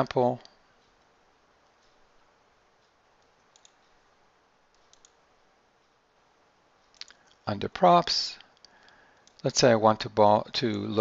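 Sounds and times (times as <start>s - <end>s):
computer mouse double-clicks: 3.2s - 3.8s, 4.7s - 5.2s.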